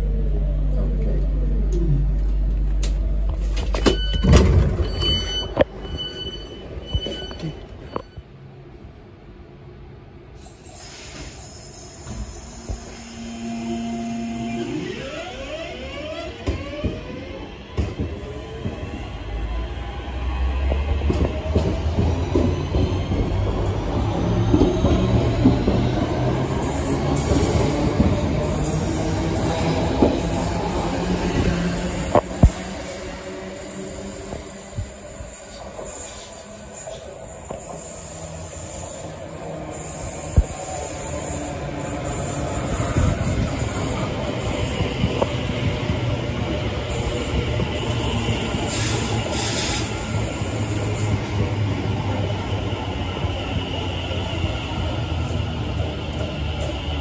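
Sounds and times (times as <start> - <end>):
electric train whine: 10.3 - 57.0
train wheels on rails: 10.3 - 57.0.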